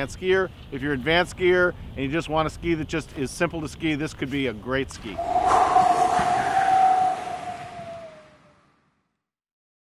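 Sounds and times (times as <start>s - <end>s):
held tone over noisy wash: 5.1s - 8.5s.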